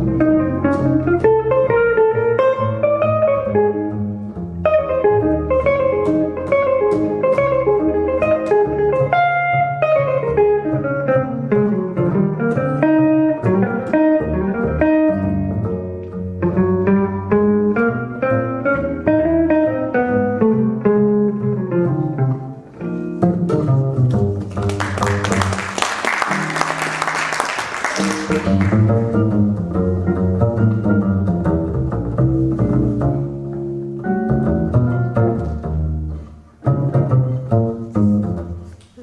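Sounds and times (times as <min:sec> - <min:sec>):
jazz guitar single-note lines: 0:00.0 - 0:25.6, 0:28.0 - 0:39.0
plucked double bass line: 0:00.0 - 0:27.2, 0:27.9 - 0:38.8
audience applause: 0:24.5 - 0:29.1.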